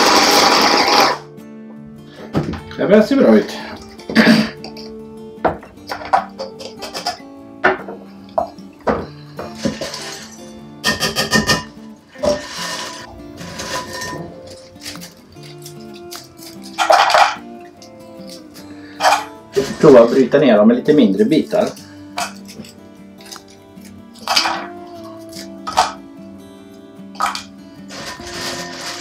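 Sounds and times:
background music: 0:00.0 - 0:29.0
scraping into glass bowl: 0:09.4 - 0:15.0, 0:19.0 - 0:20.1, 0:27.2 - 0:29.0
plastic parts clinking and knocking: 0:13.5 - 0:17.4, 0:24.2 - 0:26.0, 0:27.2 - 0:29.0.

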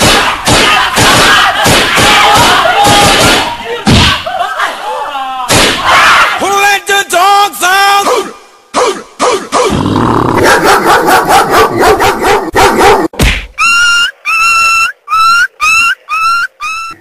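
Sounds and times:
yelping vocal sample: 0:08.0 - 0:10.4.

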